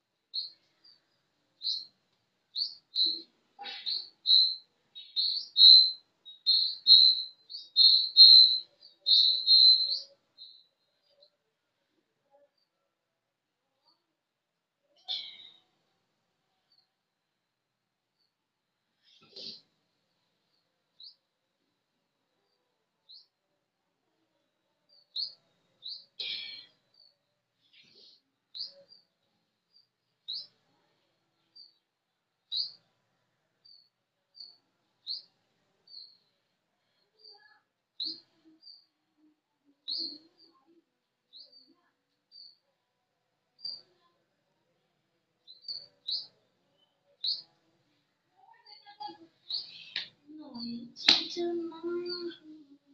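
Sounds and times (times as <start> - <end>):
bird chirping: 0.0 - 11.4, 15.0 - 15.8, 18.9 - 19.8, 20.5 - 21.3, 24.9 - 32.9, 33.6 - 38.9, 39.8 - 42.7, 43.6 - 44.1, 45.4 - 47.6, 48.6 - 52.9.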